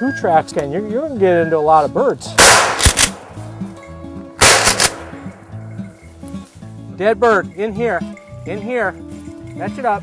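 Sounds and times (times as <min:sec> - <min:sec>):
background music: 0:00.0 - 0:10.0
shotgun shot with echo: 0:02.4 - 0:03.4, 0:04.4 - 0:05.4.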